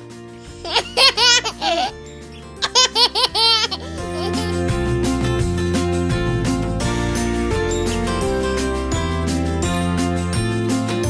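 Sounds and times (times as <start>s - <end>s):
background music: 0.0s - 11.0s
baby giggling: 0.6s - 4.7s.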